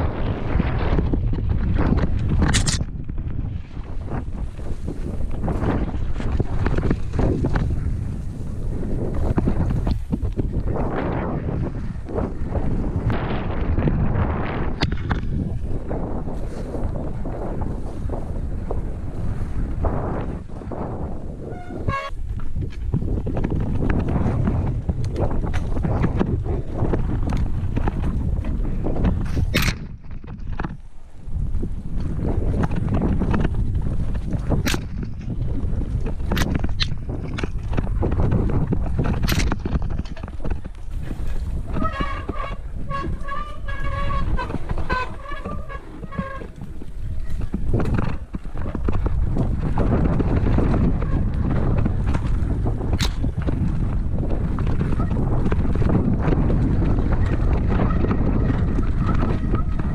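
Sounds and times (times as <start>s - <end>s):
bike rattles and knocks: 0.0s - 59.9s
tyre noise on dirt: 0.0s - 59.9s
wind buffeting microphone: 0.0s - 59.9s.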